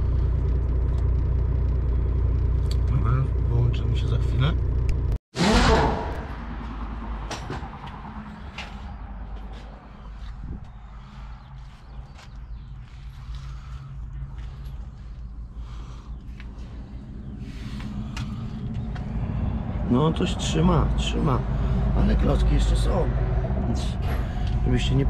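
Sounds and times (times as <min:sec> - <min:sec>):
steady low hum: 0:08.1 - 0:25.0.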